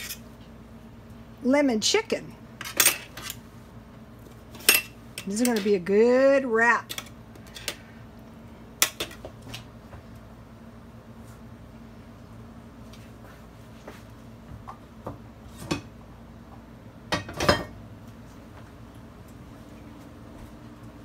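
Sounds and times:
knife and utensils clinking on metal: 2.6s - 3.4s, 4.6s - 5.8s.

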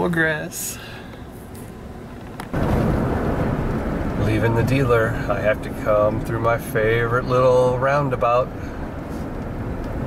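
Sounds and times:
road and engine rumble in cab: 0.0s - 10.0s.

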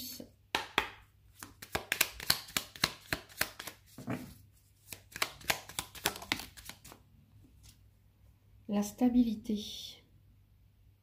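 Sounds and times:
cards being shuffled: 1.3s - 7.0s.

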